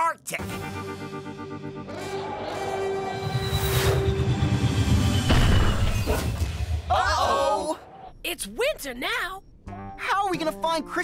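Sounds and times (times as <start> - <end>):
ominous cartoon music: 0.4 - 7.5.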